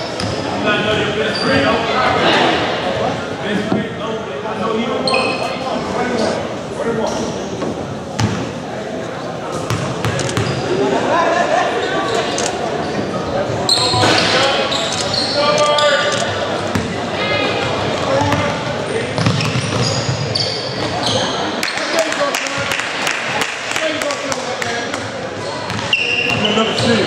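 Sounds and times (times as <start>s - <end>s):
sneakers squeaking: 0.0s - 1.9s, 5.0s - 6.4s, 9.5s - 10.8s, 11.8s - 22.0s, 25.0s - 27.0s
basketball bouncing on court: 9.7s - 10.6s, 17.6s - 18.6s, 19.2s - 20.2s, 25.7s - 27.0s.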